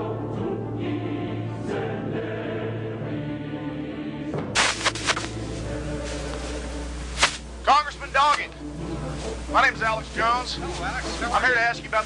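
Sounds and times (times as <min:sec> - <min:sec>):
background music: 0:00.0 - 0:12.0
choir singing sustained notes: 0:00.0 - 0:12.0.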